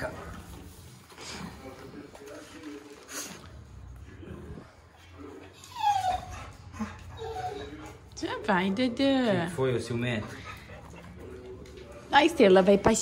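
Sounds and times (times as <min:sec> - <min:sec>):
dog whining: 0:05.5 - 0:08.1.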